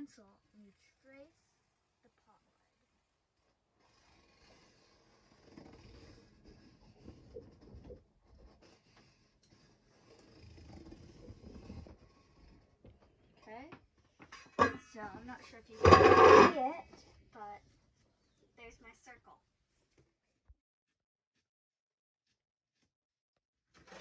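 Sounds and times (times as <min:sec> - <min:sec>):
pencil scratching on cardboard: 0:02.3 - 0:13.6, 0:15.2 - 0:16.8.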